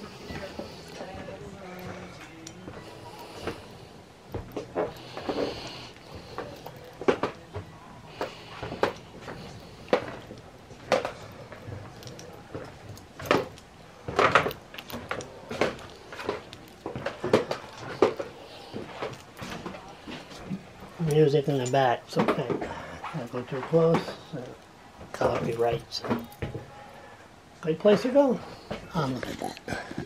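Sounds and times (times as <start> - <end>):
footsteps on wooden floor: 0.0 - 21.0
faint background music: 0.0 - 29.5.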